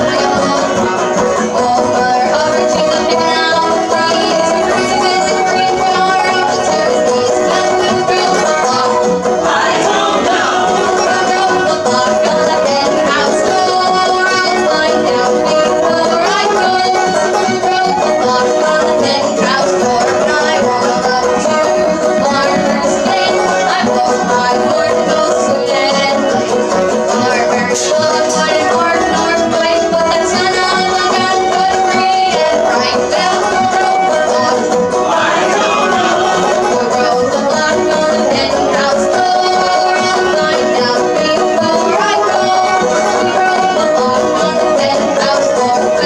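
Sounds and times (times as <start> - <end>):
acoustic guitar: 0.0 - 46.0
banjo: 0.0 - 46.0
fiddle: 0.0 - 46.0
mandolin: 0.0 - 46.0.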